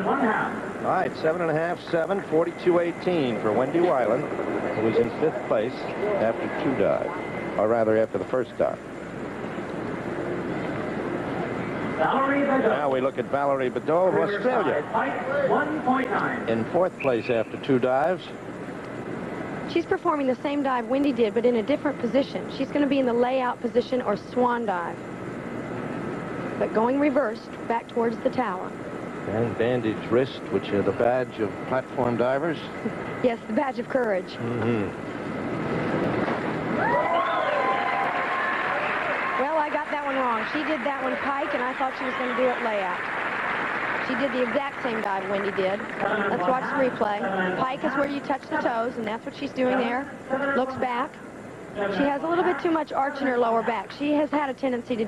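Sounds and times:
faint hum: 0.0 - 55.0.

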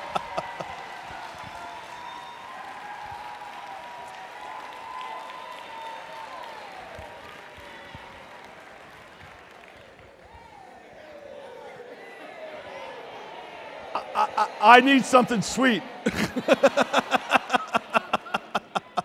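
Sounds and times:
audience applauding: 0.0 - 10.3, 14.0 - 19.0.

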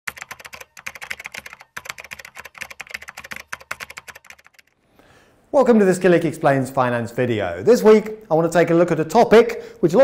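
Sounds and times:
rapid typing on keyboard: 0.1 - 4.8.

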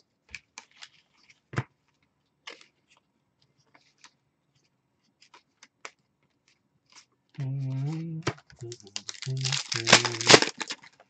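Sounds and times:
cards clicking and rustling: 7.8 - 11.0.

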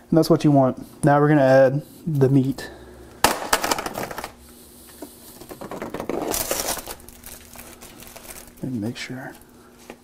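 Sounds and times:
plastic wrap crinkling: 5.3 - 10.0.

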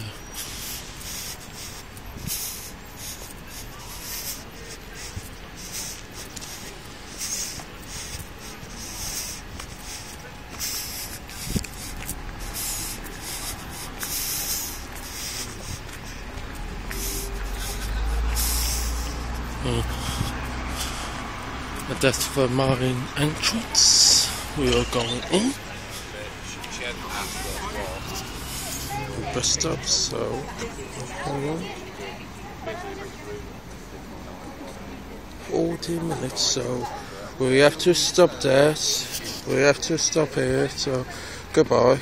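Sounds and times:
faint voices of people: 0.0 - 42.0.

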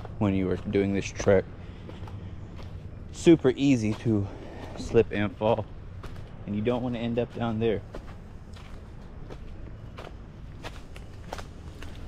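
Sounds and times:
footsteps on fallen leaves: 0.0 - 12.0.

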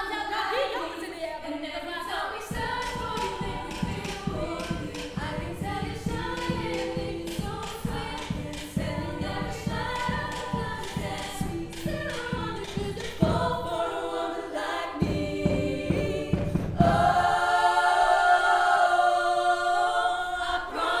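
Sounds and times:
women's choir singing: 0.0 - 21.0
steady beat: 2.5 - 19.6.

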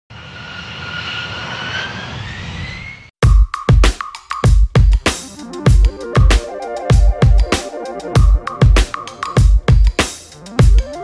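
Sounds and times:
jet engine rush and whine: 0.1 - 3.2.

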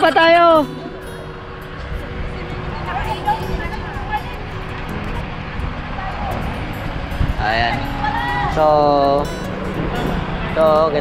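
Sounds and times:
pickup truck engine rumble: 0.0 - 11.0
wind noise on microphone: 0.8 - 11.0.

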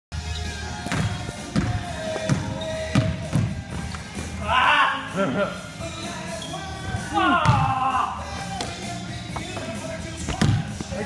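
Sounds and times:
basketball bouncing on wood floor: 0.8 - 3.8, 10.3 - 10.6.

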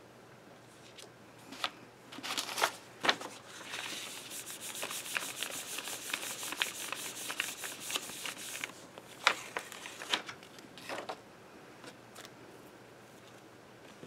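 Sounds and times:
paper crackle: 2.2 - 10.4
hand rubbing paper: 3.5 - 8.9.

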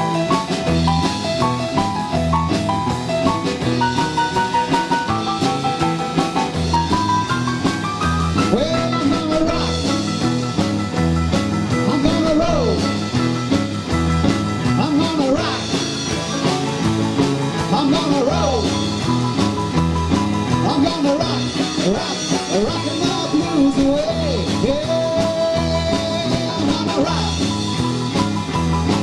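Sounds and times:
drum kit beat: 0.0 - 29.0
guitar lead with sliding notes: 0.0 - 29.0
keyboard: 0.0 - 29.0
walking bass line: 0.0 - 29.0.

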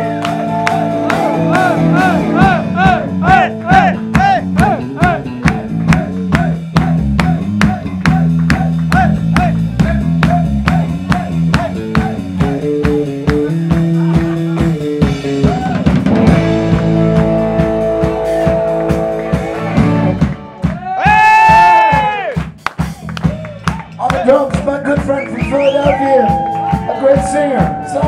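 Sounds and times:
electric bass guitar solo: 0.0 - 21.1
steady drum beat: 0.0 - 28.0.

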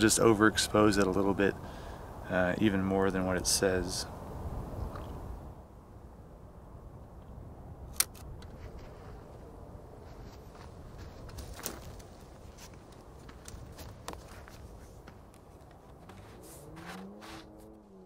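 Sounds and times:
sharp clicks: 7.9 - 8.5.

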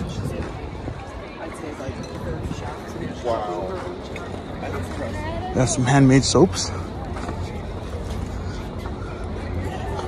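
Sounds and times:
wind rumble on microphone: 0.0 - 3.4
faint distant voices: 0.0 - 10.0.

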